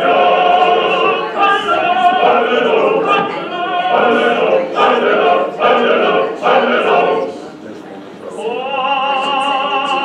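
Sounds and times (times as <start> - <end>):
cantorial singing over speakers: 0.0 - 10.0.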